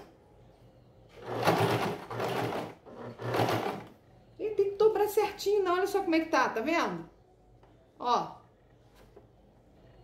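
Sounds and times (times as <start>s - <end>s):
sewing machine stitching: 1.1s - 4.0s.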